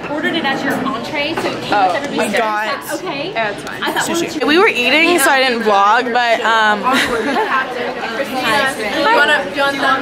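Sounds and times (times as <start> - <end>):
young women chattering: 0.0 - 10.0.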